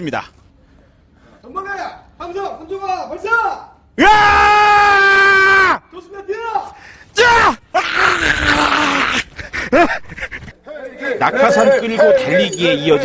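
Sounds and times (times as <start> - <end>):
man screaming: 4.0 - 5.8, 7.2 - 9.3.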